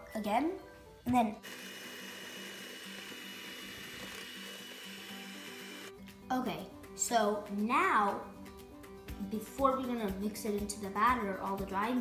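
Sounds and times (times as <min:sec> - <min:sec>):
electric hand mixer whisking batter: 0:01.4 - 0:05.9.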